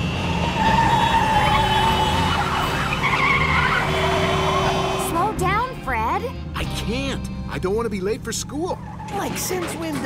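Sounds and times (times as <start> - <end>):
car engine: 0.0 - 10.0
cartoon tires squealing: 0.6 - 4.6.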